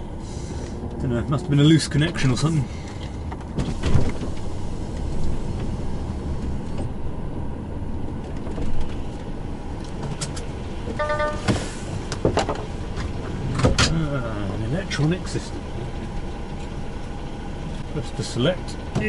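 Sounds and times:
diesel engine rumble: 0:00.0 - 0:19.0
short electronic beep: 0:11.0 - 0:11.6.

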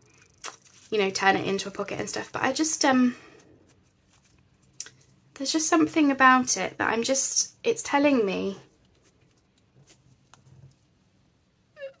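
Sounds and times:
paper pages handled: 0:00.3 - 0:01.0, 0:03.3 - 0:05.2, 0:08.7 - 0:11.0.

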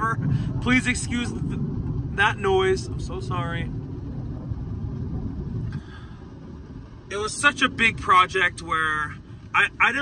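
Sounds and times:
jet aircraft rumble overhead: 0:00.0 - 0:10.0.

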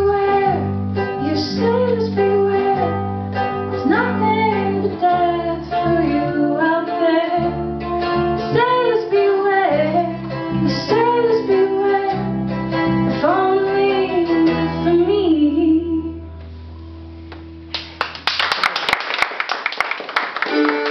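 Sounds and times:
woman singing: 0:00.0 - 0:07.8, 0:08.4 - 0:16.3
acoustic guitar: 0:00.0 - 0:17.7, 0:20.4 - 0:20.9
audience applause: 0:17.8 - 0:20.9.

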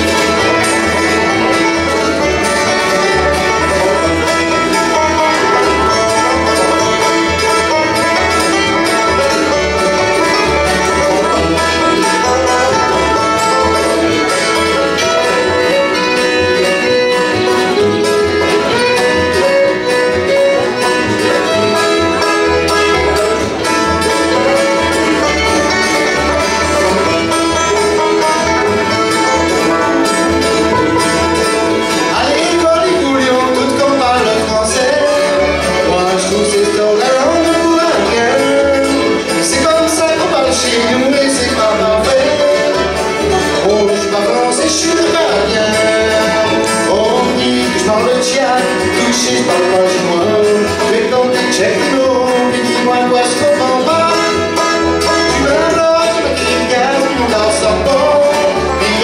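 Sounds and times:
acoustic guitar: 0:00.0 - 0:59.0
banjo: 0:00.0 - 0:59.0
fiddle: 0:00.0 - 0:59.0
mandolin: 0:00.0 - 0:59.0
upright bass: 0:00.0 - 0:59.0.

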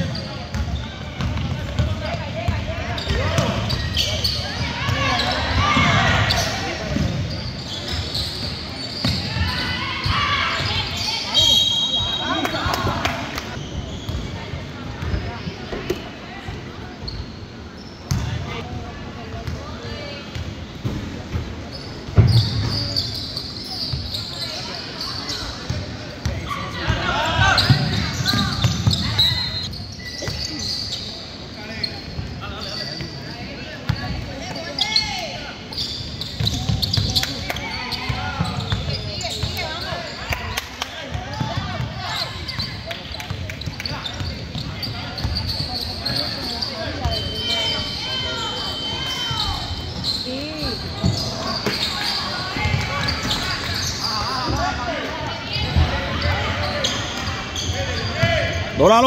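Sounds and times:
crowd chatter and shouts: 0:00.0 - 0:59.0
sneakers squeaking on court: 0:00.0 - 0:59.0.

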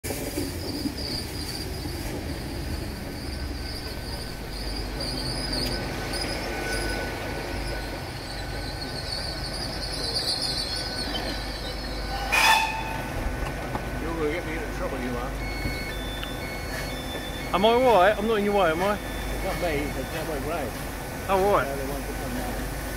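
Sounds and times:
steam locomotive rolling: 0:00.0 - 0:22.9
high-pitched wheel and brake squeal: 0:00.6 - 0:13.1, 0:14.5 - 0:20.7
loud whistle blast: 0:12.1 - 0:13.1.

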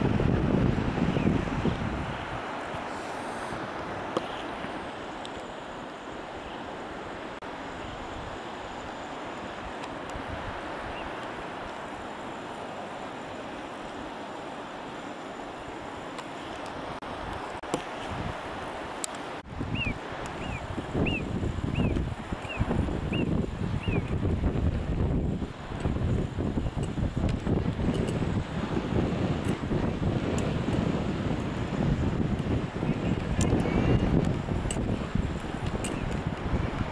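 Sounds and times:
wind buffeting microphone: 0:00.0 - 0:04.8, 0:16.6 - 0:36.9
short high chirping calls: 0:19.7 - 0:24.1.

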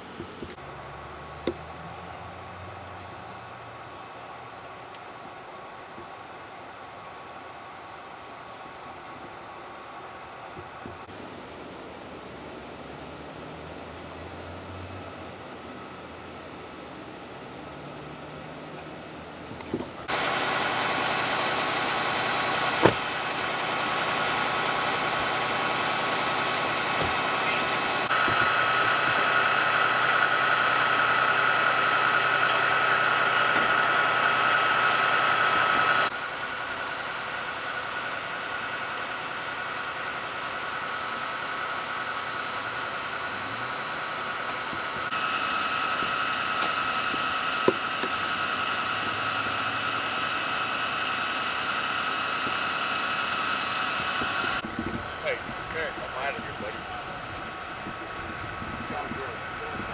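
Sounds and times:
emergency vehicles idling: 0:00.0 - 0:59.9
high steady whine: 0:00.0 - 0:59.9.

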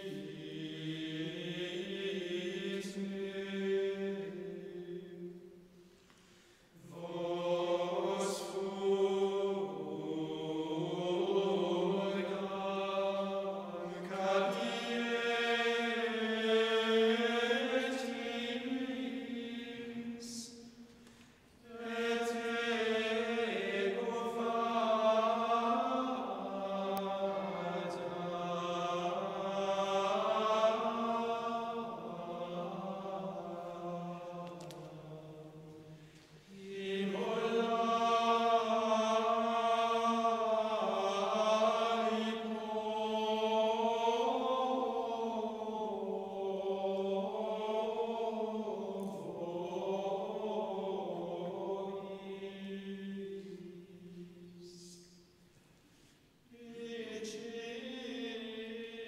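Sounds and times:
men's choir chanting in unison: 0:00.0 - 0:05.4, 0:06.8 - 0:20.8, 0:21.6 - 0:55.2, 0:56.5 - 0:59.0.

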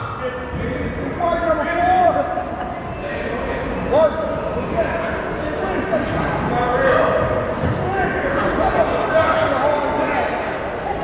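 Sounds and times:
echoing indistinct voices: 0:00.0 - 0:11.0.

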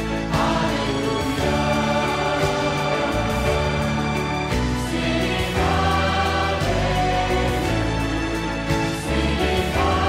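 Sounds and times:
choir singing: 0:00.0 - 0:10.0
worship band playing: 0:00.0 - 0:10.0.

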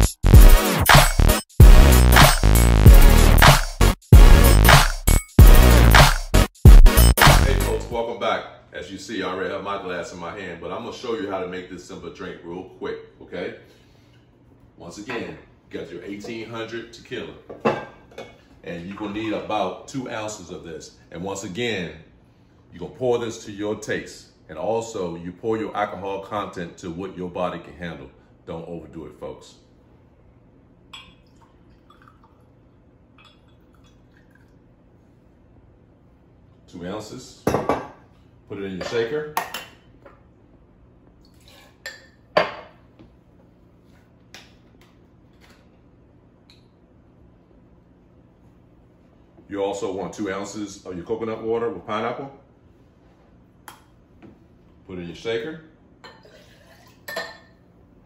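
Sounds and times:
glass clink: 0:30.9 - 0:32.2, 0:33.2 - 0:33.6, 0:41.8 - 0:42.7, 0:56.0 - 0:57.6
liquid pouring into glass: 0:30.9 - 0:34.6.

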